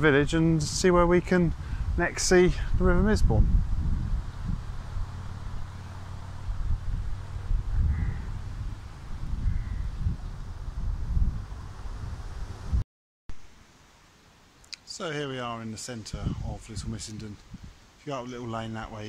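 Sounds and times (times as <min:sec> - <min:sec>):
steady low rumble: 0:00.0 - 0:12.8
faint bird calls: 0:07.8 - 0:08.4, 0:09.4 - 0:09.9.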